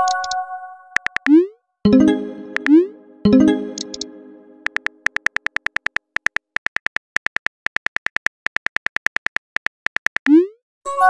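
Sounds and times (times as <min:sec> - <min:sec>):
phone keyboard typing clicks: 0:00.0 - 0:00.4, 0:01.0 - 0:01.4, 0:02.5 - 0:02.8, 0:03.7 - 0:10.3.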